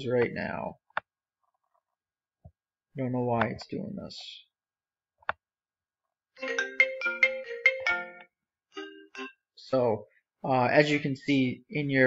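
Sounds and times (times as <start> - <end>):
phone ringtone melody: 6.4 - 9.5.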